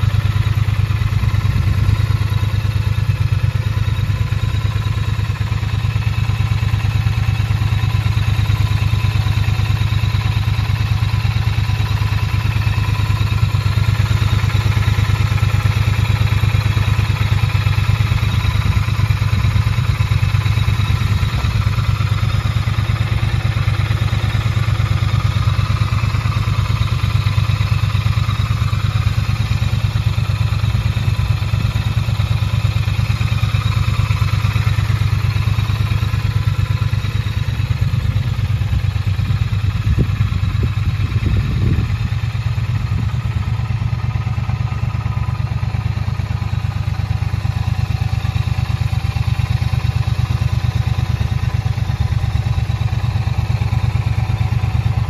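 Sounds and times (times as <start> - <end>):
motorcycle engine idling: 0.0 - 55.0.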